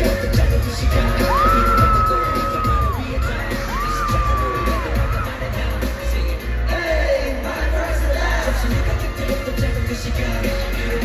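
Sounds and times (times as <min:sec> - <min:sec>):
pulsing bass beat: 0:00.0 - 0:06.6, 0:07.3 - 0:11.0
pop concert music: 0:00.0 - 0:11.0
high held vocal cries: 0:00.9 - 0:05.6.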